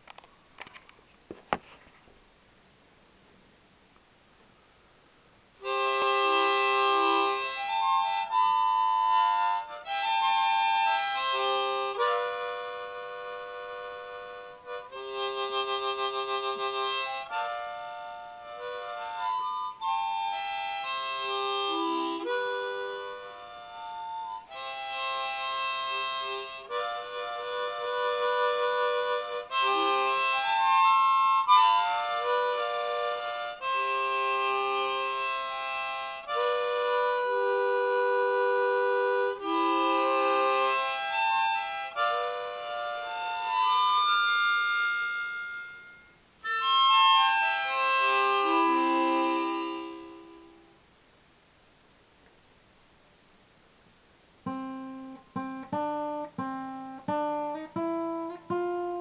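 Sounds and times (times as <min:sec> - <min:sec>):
harmonica melody: 0:05.6 - 0:50.8, 0:54.4 - 0:59.0.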